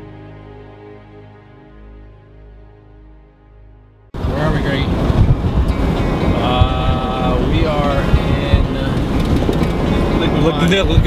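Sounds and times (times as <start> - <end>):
road and engine rumble in cabin: 4.2 - 11.0.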